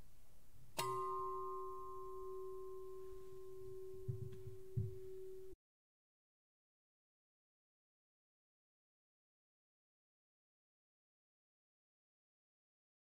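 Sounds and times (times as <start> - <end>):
hanging bell ringing: 0.8 - 5.6
soft low thumps: 4.0 - 5.5.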